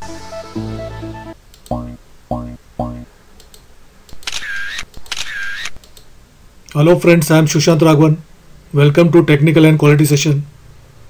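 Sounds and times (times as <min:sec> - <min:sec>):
camera shutter sound effect: 0:04.1 - 0:05.8.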